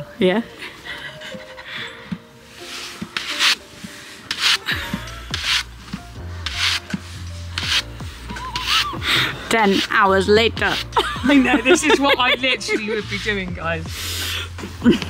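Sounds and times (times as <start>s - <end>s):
brush strokes on horse's coat: 2.4s - 4.7s, 5.3s - 14.2s.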